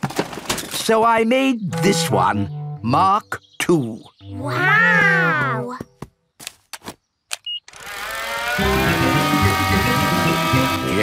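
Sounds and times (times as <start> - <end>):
background music: 1.6 - 5.7, 8.4 - 11.0
toy propeller engine whine: 7.7 - 11.0.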